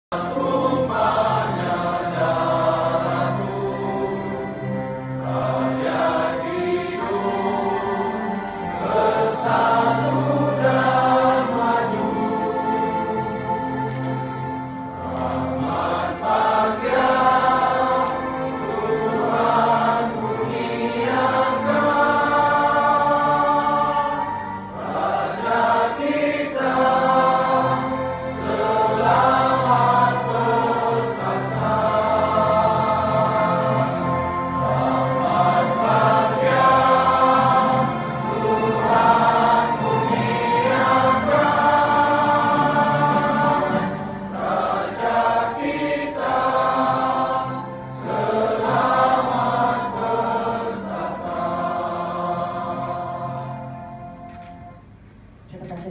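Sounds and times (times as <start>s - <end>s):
choir singing an anthem: 0.1s - 54.3s
musical accompaniment: 0.1s - 55.9s.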